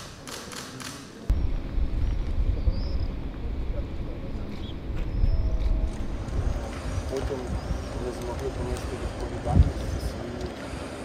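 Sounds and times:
sharp clicks: 0.0s - 1.2s
wind buffeting microphone: 1.3s - 11.0s.

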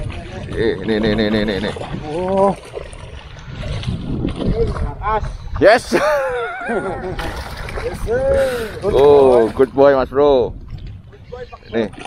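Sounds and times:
fish splashing in water: 0.0s - 5.6s, 7.0s - 9.7s.

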